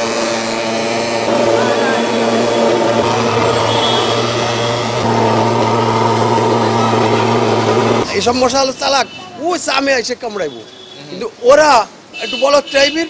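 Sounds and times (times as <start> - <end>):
fogging machine engine drone: 0.0 - 8.6
fog hissing: 0.8 - 8.0.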